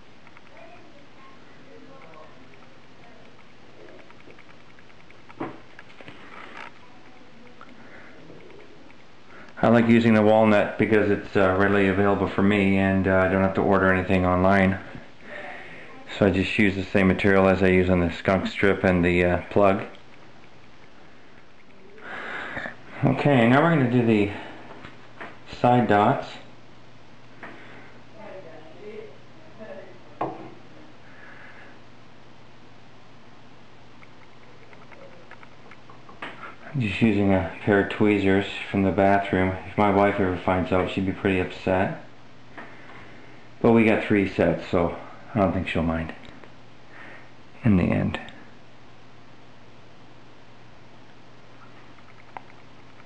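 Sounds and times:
faint room noise: 0.0s - 53.0s.

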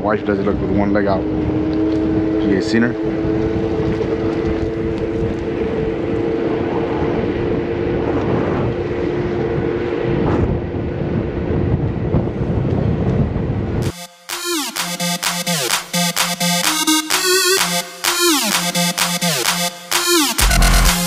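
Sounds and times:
road and wind noise: 0.0s - 13.9s
two-note motor whine: 0.5s - 9.4s, 13.8s - 21.0s
electronic dance music: 13.8s - 21.0s.

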